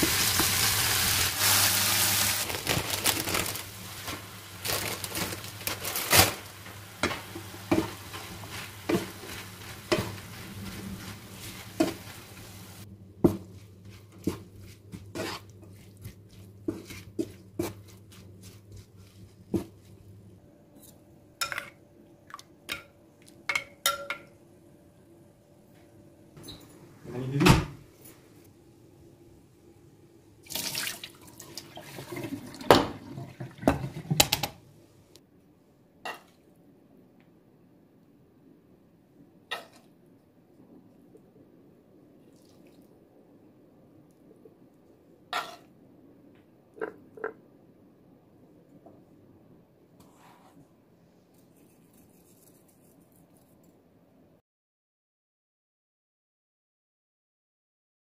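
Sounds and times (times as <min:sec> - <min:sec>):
light frying sizzle: 0:00.0 - 0:20.2.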